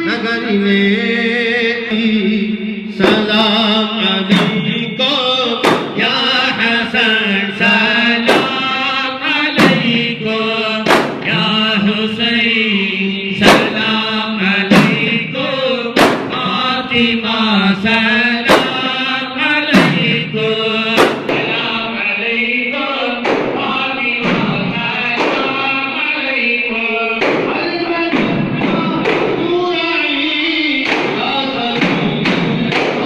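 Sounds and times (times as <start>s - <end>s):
men chanting: 0.0s - 33.0s
frame drums beating slowly: 3.0s - 6.6s, 9.6s - 12.2s, 14.6s - 17.2s, 18.4s - 19.0s, 19.7s - 21.9s, 23.2s - 25.7s, 30.8s - 33.0s.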